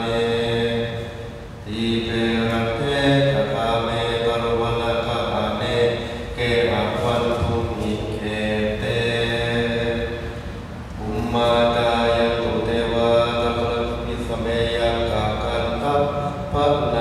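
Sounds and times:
monks chanting in unison: 0.0s - 17.0s.

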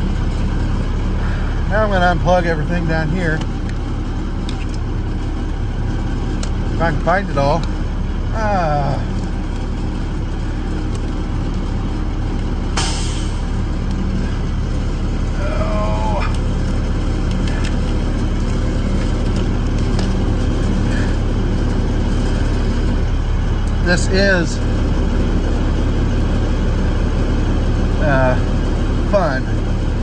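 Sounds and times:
truck engine idling: 0.0s - 30.0s.

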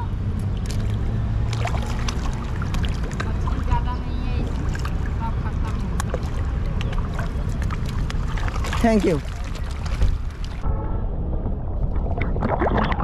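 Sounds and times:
steady low rumble: 0.0s - 13.0s
water lapping and splashing: 0.4s - 10.6s.

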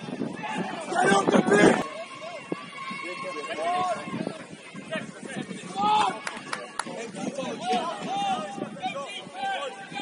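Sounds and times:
people shouting outdoors: 0.0s - 10.0s.

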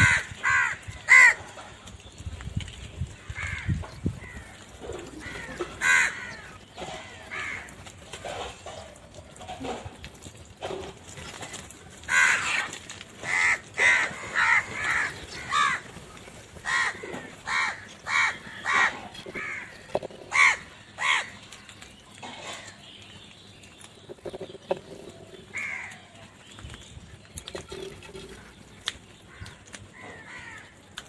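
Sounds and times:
crows cawing: 0.0s - 1.8s, 3.1s - 8.9s, 11.3s - 22.8s, 24.3s - 26.3s, 29.2s - 31.0s.

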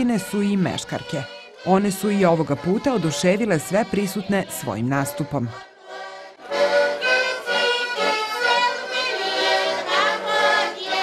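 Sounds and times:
button accordions: 0.0s - 11.0s
women singing together: 0.0s - 11.0s.

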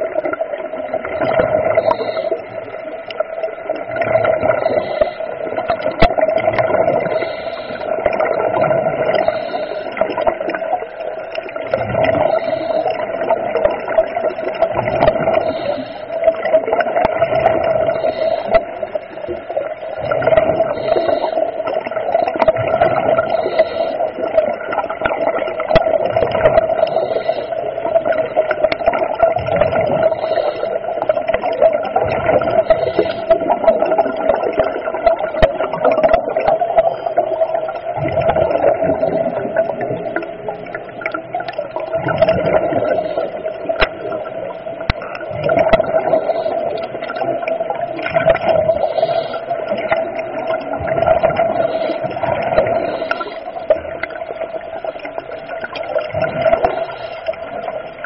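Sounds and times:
exhaled bubbles rushing: 0.0s - 58.0s
steady underwater hum: 0.0s - 58.0s
diver breathing: 1.8s - 2.7s, 4.6s - 5.5s, 7.0s - 8.1s, 9.2s - 10.1s, 12.2s - 13.2s, 15.1s - 16.4s, 17.6s - 22.1s, 23.0s - 24.3s, 26.6s - 28.0s, 30.0s - 31.2s, 32.6s - 33.9s, 42.7s - 43.9s, 45.8s - 47.0s, 48.5s - 49.8s, 51.4s - 53.7s, 56.6s - 57.7s.

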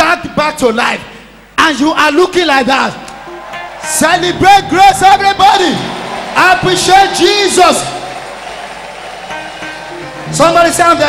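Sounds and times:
church band music: 2.5s - 11.0s
congregation applauding: 2.8s - 11.0s.

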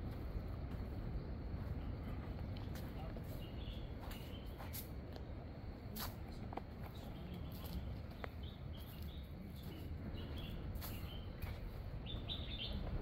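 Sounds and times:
low outdoor rumble: 0.0s - 13.0s
birds chirping: 1.8s - 4.8s, 6.8s - 13.0s.

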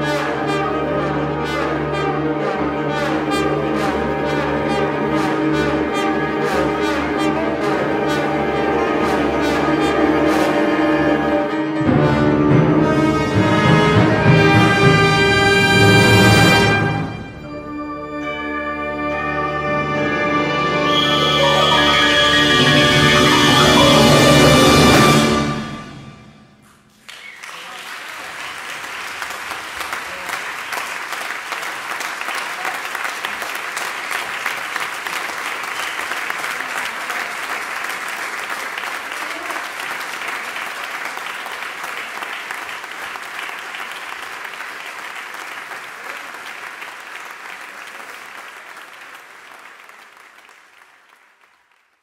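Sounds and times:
audience applause: 20.8s - 25.3s, 26.9s - 52.0s.

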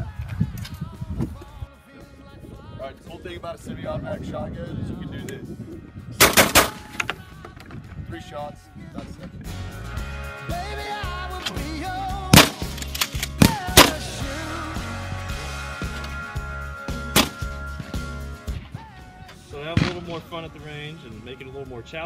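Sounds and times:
song with singing and beat: 0.0s - 3.4s, 6.8s - 22.0s
shotgun shots: 6.2s - 6.9s, 12.3s - 14.1s, 17.2s - 17.4s, 19.6s - 20.5s.

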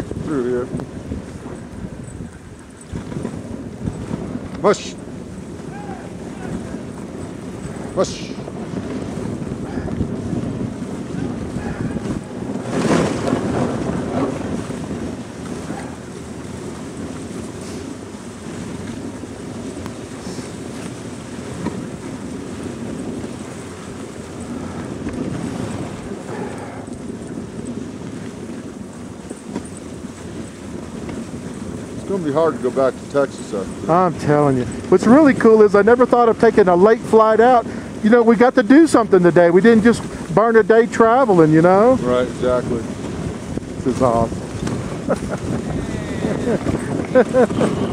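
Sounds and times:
sled runners hissing over snow: 0.0s - 47.9s
wind buffeting microphone: 0.0s - 47.9s.

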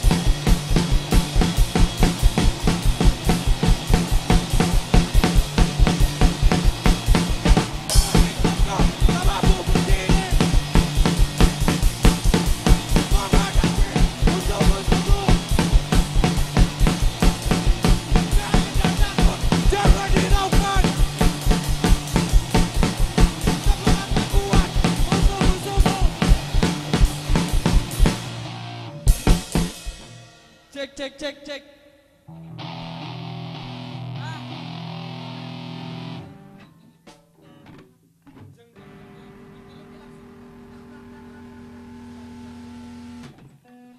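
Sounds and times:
electric bass: 0.0s - 30.0s, 32.4s - 36.6s
electric guitar: 0.0s - 30.4s, 32.3s - 43.9s
drum kit beat: 0.0s - 30.8s.

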